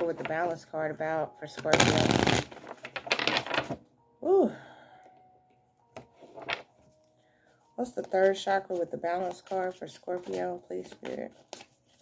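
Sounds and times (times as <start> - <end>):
cards riffle-shuffled: 1.7 - 3.8, 8.0 - 12.0.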